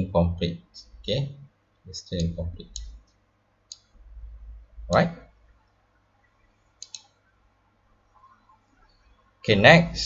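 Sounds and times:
computer mouse double-click: 6.8s - 7.1s.

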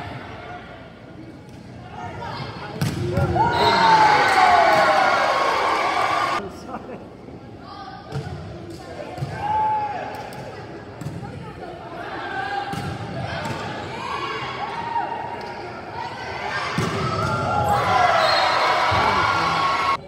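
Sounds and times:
crowd cheering: 3.4s - 6.4s, 17.0s - 20.0s.

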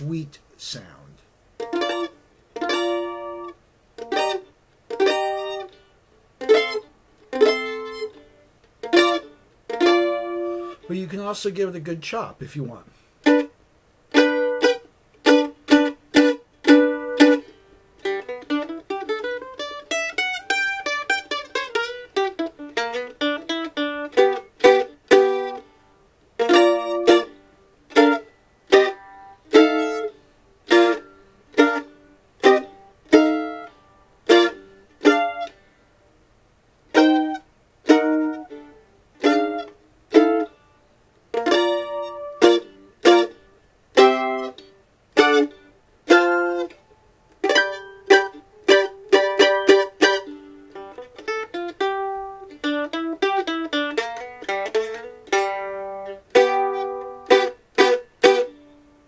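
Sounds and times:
mandolin playing: 1.6s - 12.3s, 13.2s - 36.2s, 36.9s - 59.0s.

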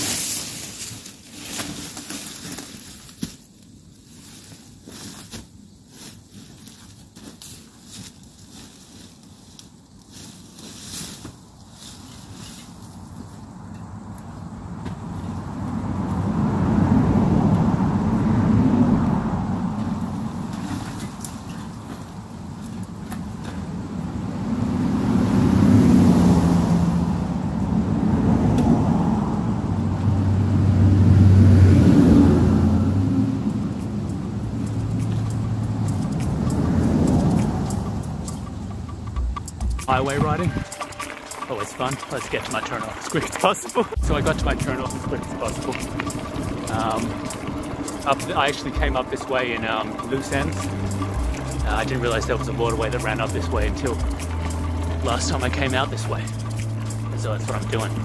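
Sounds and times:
road traffic passing: 0.0s - 3.0s, 7.5s - 58.0s
footsteps on leaf litter: 0.0s - 13.5s
bicycle pushed over mulch: 0.0s - 13.6s, 19.8s - 23.9s, 39.7s - 58.0s.

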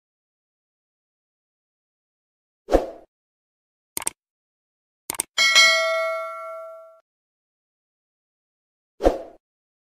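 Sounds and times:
bell notification ding: 5.4s - 7.0s.

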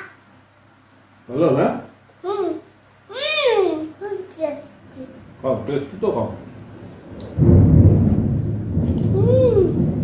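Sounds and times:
low rumble of thunder: 6.6s - 10.0s.

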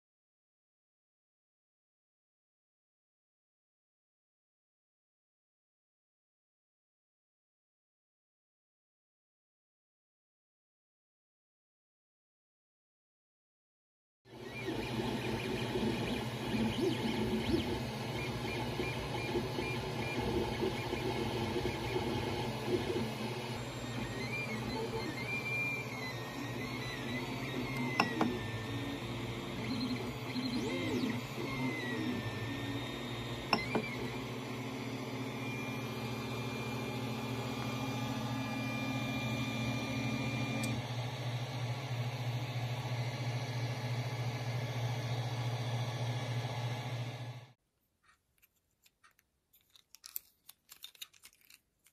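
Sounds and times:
stepper motors whining: 14.4s - 41.1s
fans humming: 14.5s - 43.0s.

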